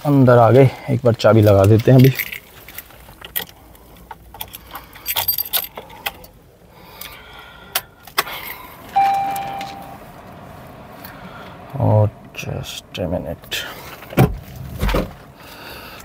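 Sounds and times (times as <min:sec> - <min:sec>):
car keys jangling: 0:01.5 - 0:06.4, 0:07.8 - 0:10.0
dashboard electronic chime: 0:09.0 - 0:10.0.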